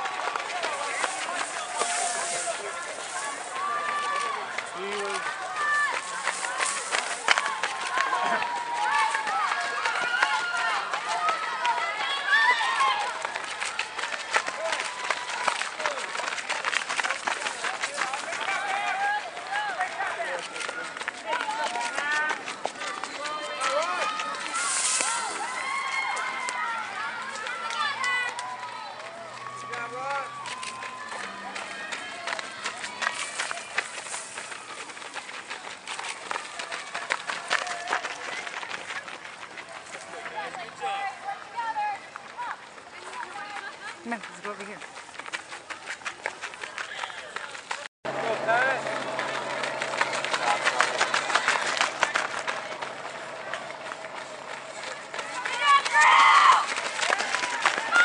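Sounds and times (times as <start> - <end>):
footsteps on gravel: 0.0 - 10.0, 13.2 - 26.5, 30.2 - 40.2, 43.0 - 58.0
spectators shouting: 0.0 - 17.2, 17.8 - 35.0, 48.1 - 58.0.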